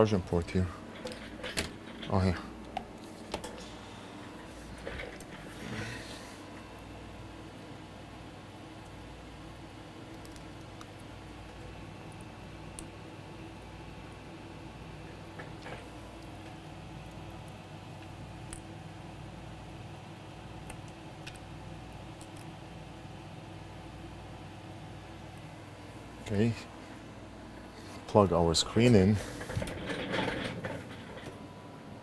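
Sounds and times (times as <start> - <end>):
steady electrical hum: 0.0 - 32.0.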